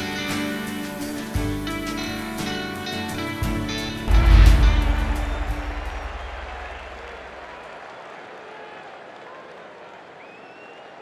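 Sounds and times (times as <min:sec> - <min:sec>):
country-rock song final hit: 0:00.3 - 0:07.0.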